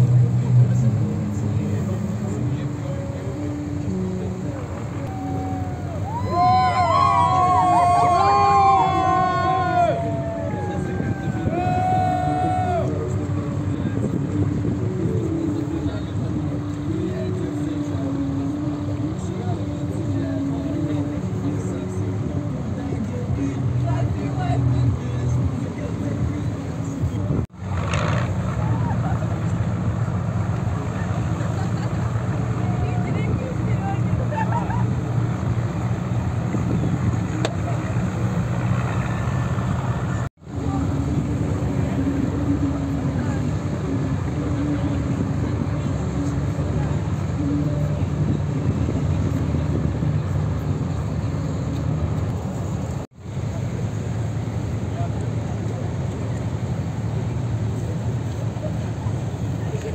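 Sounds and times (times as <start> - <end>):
music playing: 0.0 - 27.4
boat engine rumble: 0.0 - 59.9
wind: 0.0 - 59.9.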